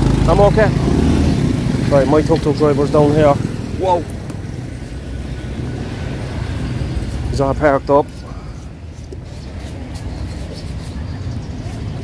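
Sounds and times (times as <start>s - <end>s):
motorbike engines rumbling: 0.0s - 12.0s.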